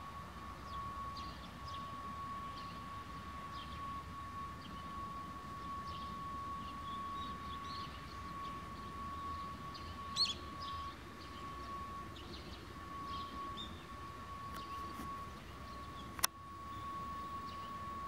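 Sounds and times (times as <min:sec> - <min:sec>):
bird chirps: 0:04.6 - 0:17.9.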